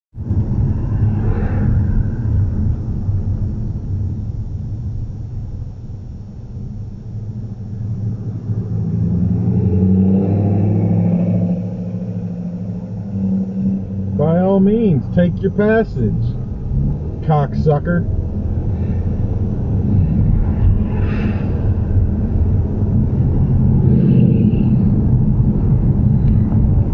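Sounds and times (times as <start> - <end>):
car road and engine rumble: 0.1 - 26.9.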